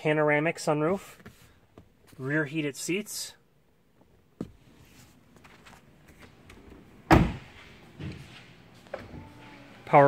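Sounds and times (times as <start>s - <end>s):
truck door shutting thump: 7.1s - 7.5s.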